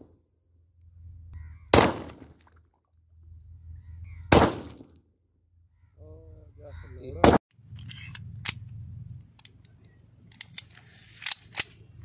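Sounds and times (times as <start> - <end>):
pistol shots: 1.7 - 2.3, 4.3 - 4.9
steady low rumble: 7.5 - 12.0.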